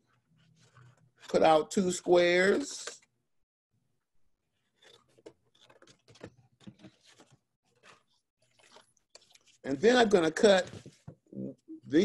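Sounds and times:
paper rustling: 0:00.0 - 0:01.5, 0:04.5 - 0:11.2.

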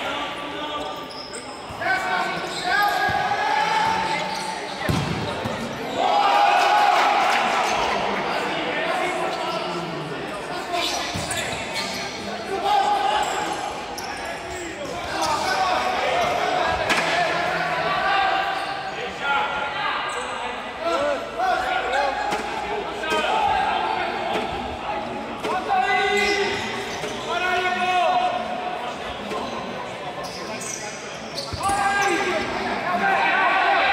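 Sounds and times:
ball kicked and bouncing: 0:04.9 - 0:05.2.

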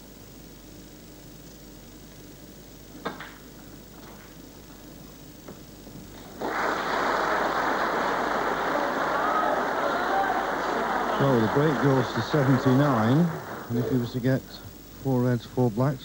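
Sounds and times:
audience applause: 0:06.2 - 0:14.2.

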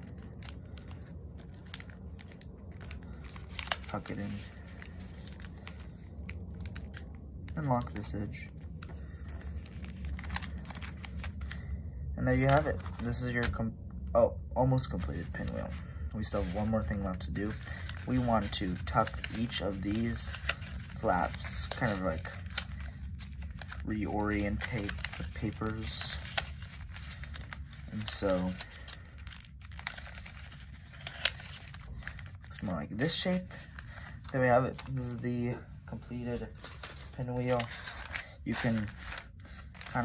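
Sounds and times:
paper rustling and crinkling: 0:00.0 - 0:13.7, 0:14.8 - 0:40.0
small paper crackles: 0:00.0 - 0:13.7, 0:14.8 - 0:40.0.

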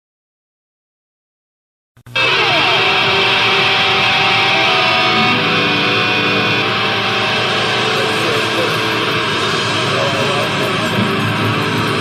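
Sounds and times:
distorted guitars: 0:02.1 - 0:12.0
screamo band music: 0:02.2 - 0:12.0.

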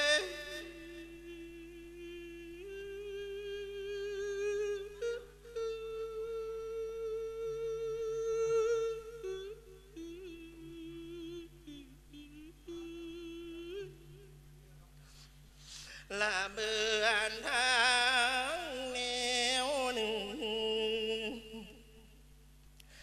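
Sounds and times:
monk chanting into a microphone: 0:00.0 - 0:14.3.

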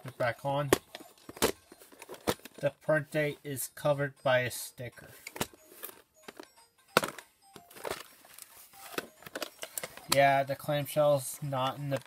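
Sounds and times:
plastic case clicks and taps: 0:06.2 - 0:08.1.

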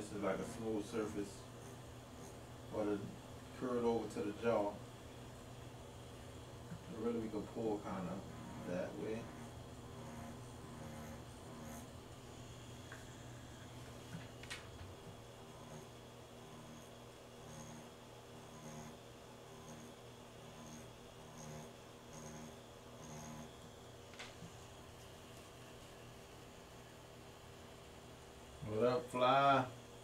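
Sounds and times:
tattoo machine buzzing: 0:07.9 - 0:11.9, 0:15.4 - 0:23.6.

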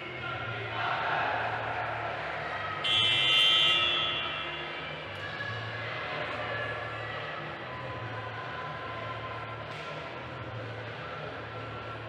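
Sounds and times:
hall background murmur: 0:00.0 - 0:12.0
scoreboard buzzer: 0:02.9 - 0:04.2.

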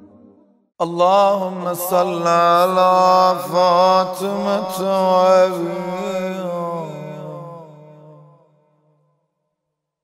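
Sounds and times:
man chanting a lament: 0:00.8 - 0:08.4.

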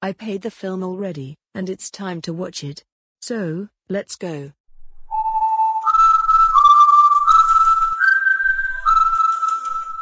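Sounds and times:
person whistling a tune: 0:05.1 - 0:10.0.

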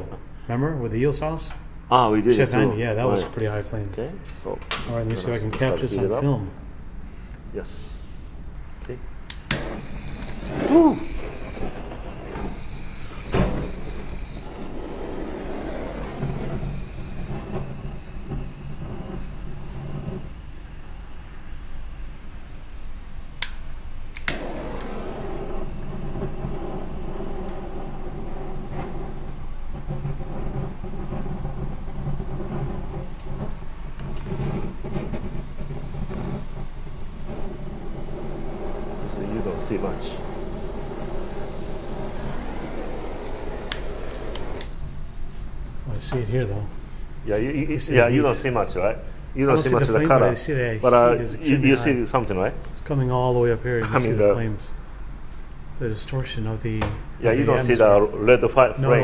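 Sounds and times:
flame hissing: 0:04.7 - 0:59.0
wine boiling in a saucepan: 0:05.3 - 0:59.0
torch ignition click: 0:08.8 - 0:15.2, 0:23.4 - 0:31.2, 0:32.8 - 0:44.8.

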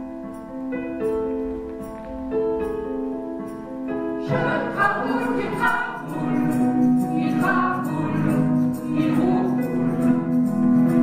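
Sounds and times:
choir singing: 0:04.2 - 0:11.0.

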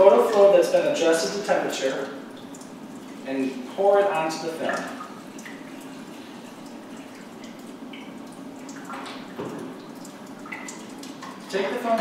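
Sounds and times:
liquid being poured: 0:00.0 - 0:11.8
water trickling in a sink: 0:00.0 - 0:12.0.

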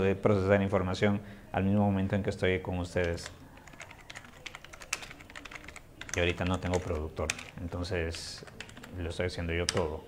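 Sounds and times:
computer keyboard typing: 0:03.0 - 0:10.0.

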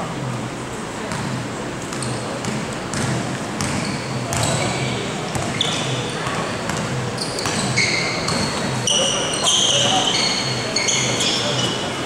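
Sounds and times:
basketball dribbling on court: 0:01.1 - 0:08.8
sneakers squeaking on floor: 0:01.1 - 0:12.0.

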